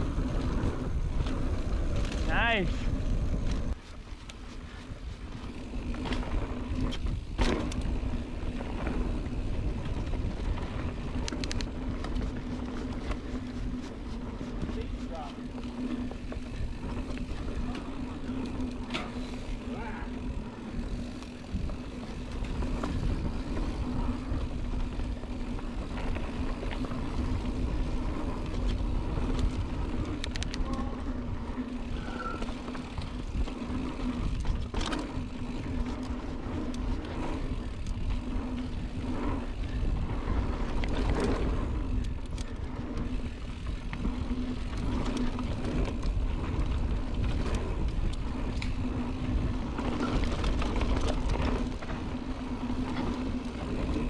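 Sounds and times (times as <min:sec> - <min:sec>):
bike clicks and rattles: 0:00.0 - 0:54.0
constant hum: 0:00.0 - 0:54.0
trail rumble: 0:00.0 - 0:54.0
wind: 0:00.0 - 0:54.0.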